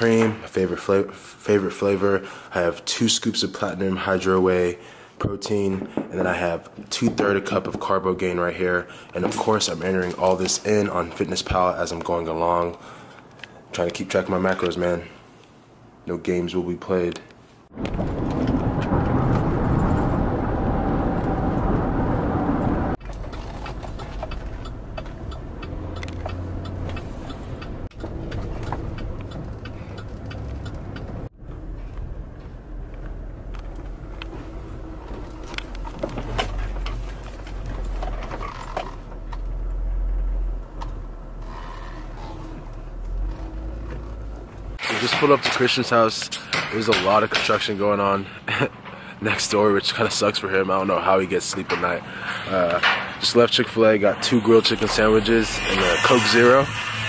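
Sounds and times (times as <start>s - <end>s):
car cabin road and engine noise: 17.8s - 44.8s.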